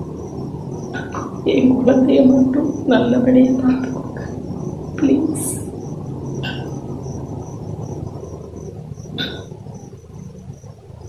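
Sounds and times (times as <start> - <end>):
crickets chirping: 0.0 - 11.0
low steady hum: 0.0 - 11.0.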